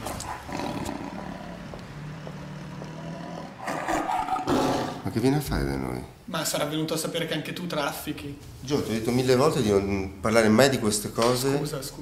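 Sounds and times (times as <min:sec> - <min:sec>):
lion growling: 0:00.0 - 0:05.1.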